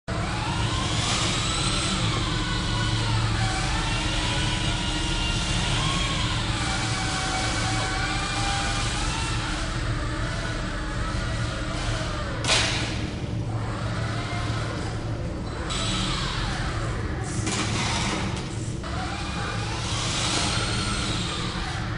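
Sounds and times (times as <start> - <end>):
model airplane motor whining: 0.1 - 12.6, 13.5 - 17.0, 18.8 - 21.9
steady low hum: 0.1 - 21.9.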